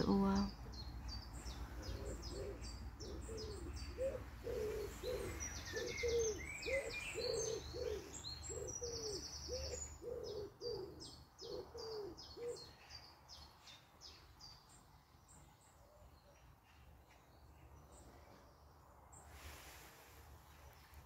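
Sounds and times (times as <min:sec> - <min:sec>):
songbirds chirping: 0:00.0 - 0:21.0.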